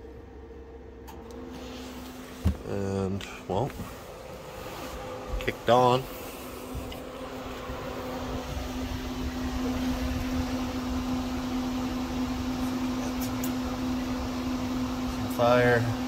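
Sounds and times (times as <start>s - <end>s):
furnace blower hum: 0.0s - 16.0s
furnace low rumble: 0.0s - 16.0s.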